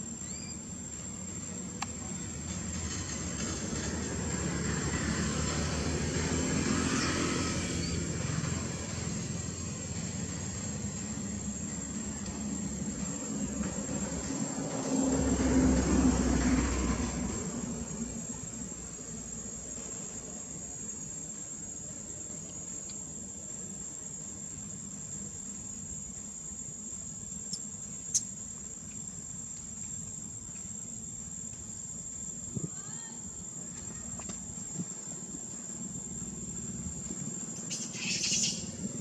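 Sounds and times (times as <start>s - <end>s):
high insect trill: 0.0s - 39.0s
vehicle engine passing: 2.7s - 11.6s, 13.8s - 18.3s.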